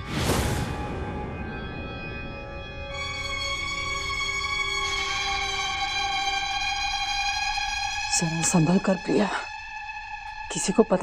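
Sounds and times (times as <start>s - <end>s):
tense sustained chord music: 0.1s - 11.0s.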